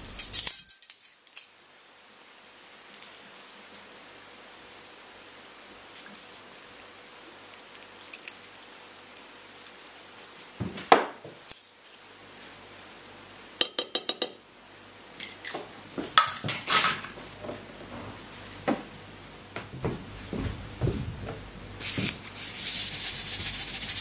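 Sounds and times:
utensils and dishes clinking: 0:00.0 - 0:01.5.

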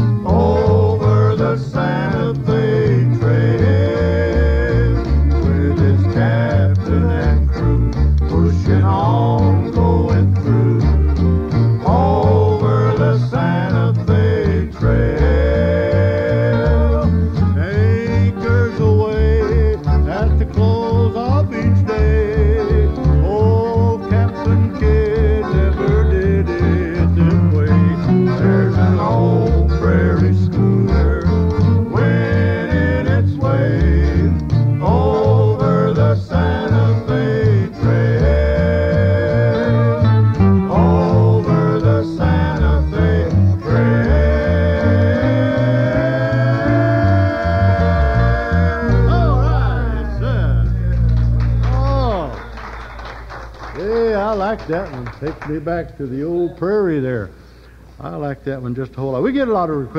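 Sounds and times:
acoustic guitars: 0:00.0 - 0:54.8
bass line: 0:00.0 - 0:56.1
person singing: 0:00.2 - 0:11.1, 0:11.8 - 0:51.1.

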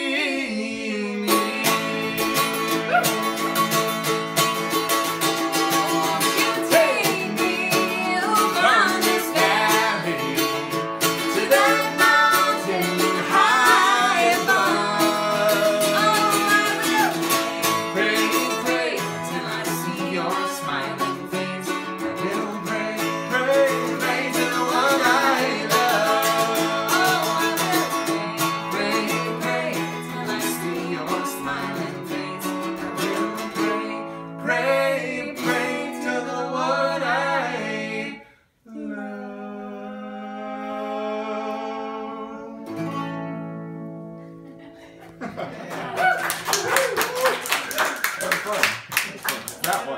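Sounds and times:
strummed acoustic string instrument: 0:00.9 - 0:38.0, 0:42.6 - 0:44.4.

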